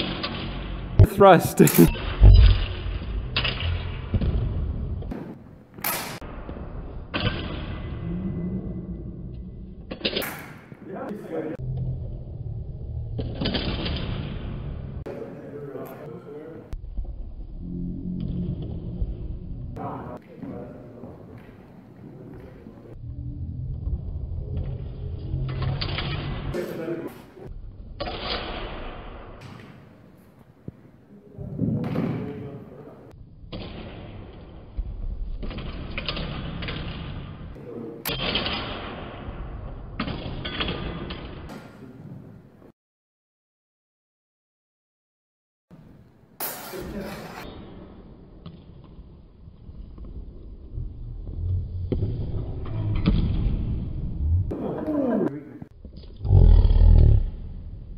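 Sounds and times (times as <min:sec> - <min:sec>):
person laughing: 0:01.0 - 0:02.4.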